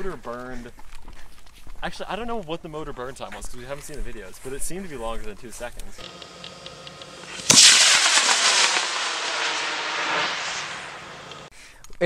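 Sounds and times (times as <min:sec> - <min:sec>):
rocket motor igniting and roaring: 0:06.0 - 0:11.5.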